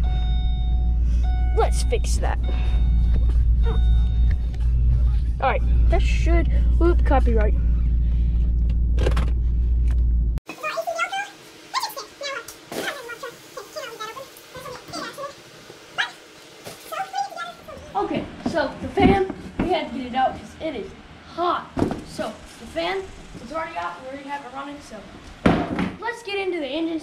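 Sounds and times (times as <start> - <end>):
voice-like calls: 10.5 - 16.3
sharp knocks: 25.4 - 26.0.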